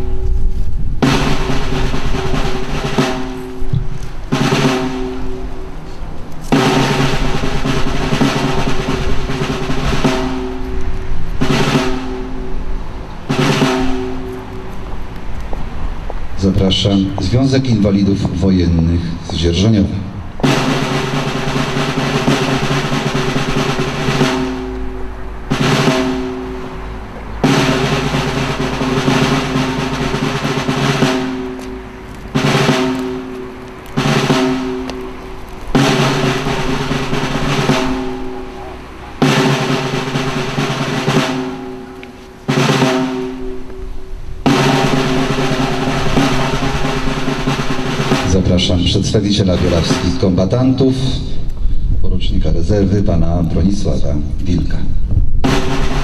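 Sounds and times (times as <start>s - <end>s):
snare drum rolls: 1.0s - 5.8s, 6.4s - 15.2s, 20.4s - 51.4s, 55.4s - 56.0s.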